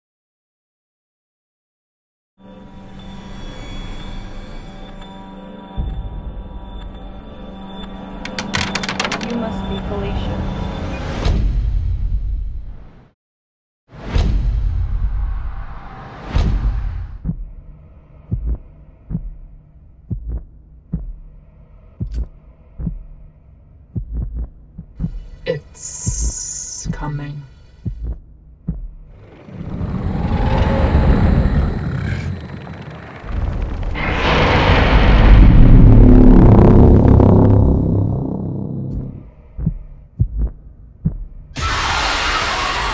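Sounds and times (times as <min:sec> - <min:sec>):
heartbeat thumps: 0:17.0 - 0:29.2, 0:39.0 - 0:41.6.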